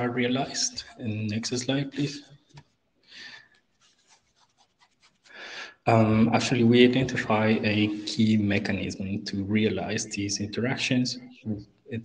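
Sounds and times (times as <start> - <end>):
soft breath on microphone: 5.2 - 5.8.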